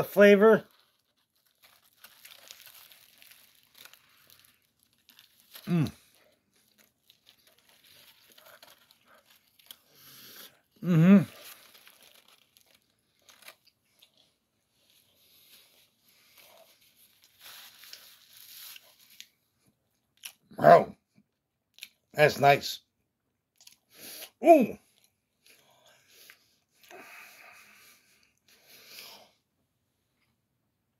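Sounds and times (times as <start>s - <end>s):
foil wrapper crinkling: 0.2s - 10.6s, 11.2s - 19.4s
paper bag rustling: 0.6s - 9.8s, 11.3s - 13.6s
chewing with faint crunches: 0.7s - 20.5s
person humming mm-hmm: 10.8s - 11.4s.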